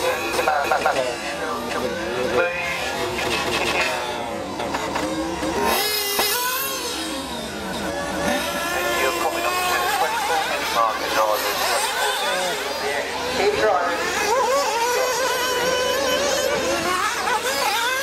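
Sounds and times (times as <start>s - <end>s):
rc buggy engines whining: 0.0s - 18.0s.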